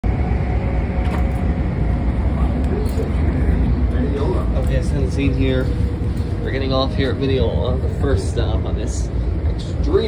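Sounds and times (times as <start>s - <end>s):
electric train rumbling: 0.0s - 10.0s
faint voices: 2.2s - 10.0s.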